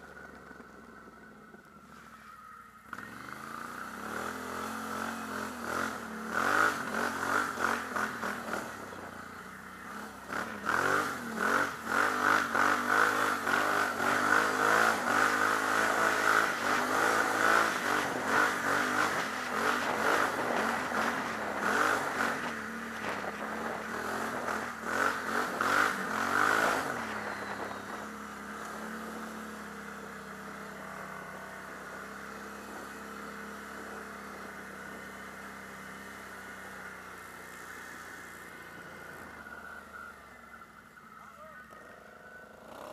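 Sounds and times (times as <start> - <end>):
atv engine revving: 0.0 - 42.9.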